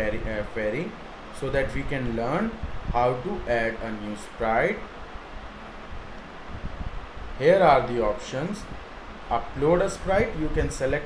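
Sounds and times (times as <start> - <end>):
microphone hiss and rumble: 0.0 - 11.0.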